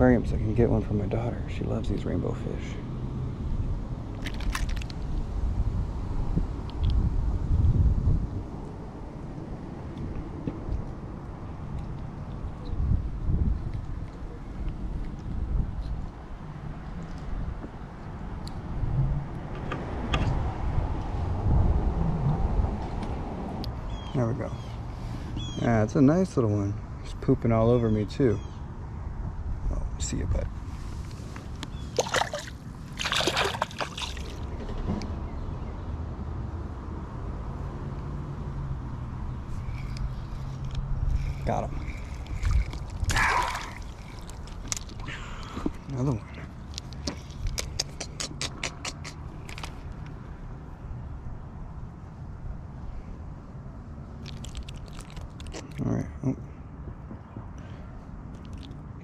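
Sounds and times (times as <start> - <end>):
small splashes in creek water: 4.2 - 5.0, 31.9 - 34.5, 39.6 - 45.6, 54.2 - 55.8
soft clicks and scratchy rustles: 30.6 - 31.8, 39.5 - 43.0, 45.6 - 47.8.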